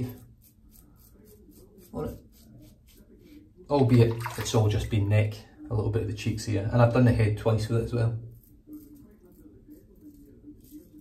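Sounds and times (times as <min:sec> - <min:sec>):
razor scraping stubble: 0:00.0 - 0:03.5, 0:07.5 - 0:11.0.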